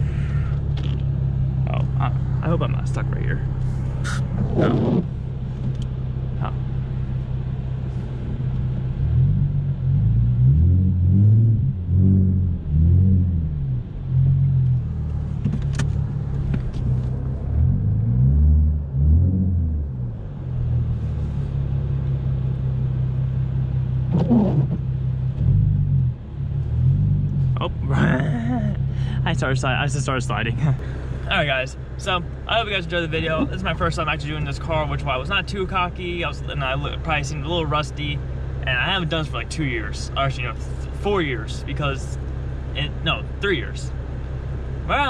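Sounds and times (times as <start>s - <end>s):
car engine revving: 0.0s - 45.0s.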